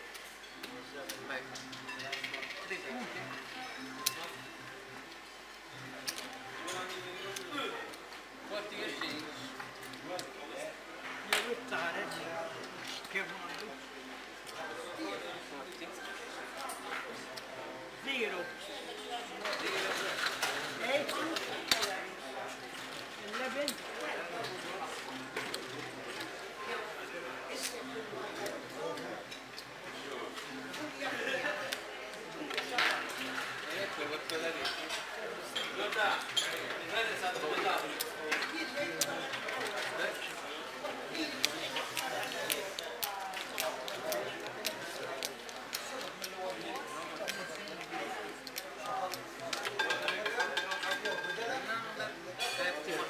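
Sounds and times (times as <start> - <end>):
background chatter: 0.0 - 53.0
murmur of voices: 0.0 - 53.0
casino chips clicking: 41.2 - 50.0.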